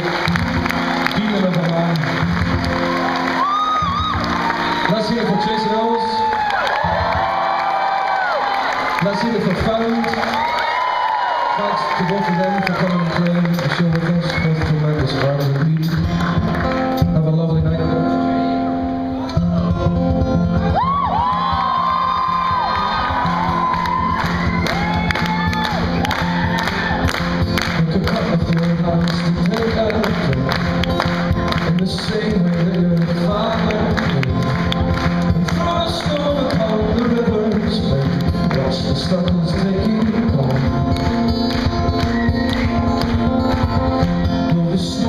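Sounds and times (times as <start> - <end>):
crowd whooping and cheering: 0.0 - 1.5, 2.1 - 14.6, 19.2 - 27.6, 41.7 - 44.5
live folk-rock band: 0.0 - 45.0.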